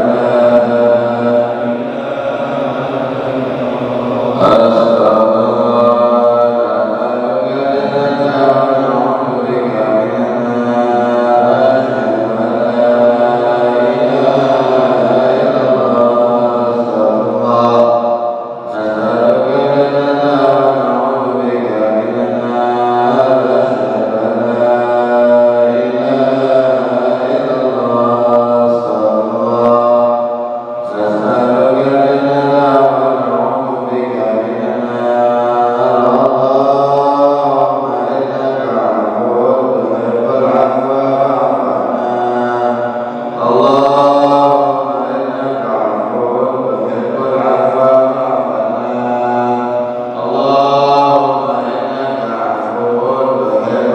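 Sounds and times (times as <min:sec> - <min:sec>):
man chanting a prayer: 0:00.0 - 0:53.9.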